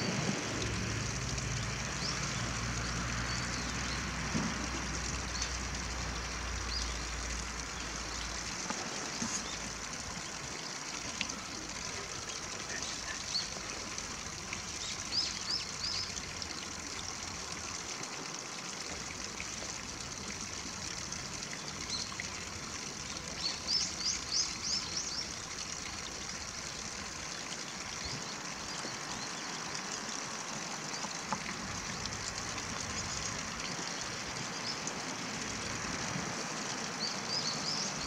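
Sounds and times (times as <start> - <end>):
stream trickling over stones: 0.0 - 38.0.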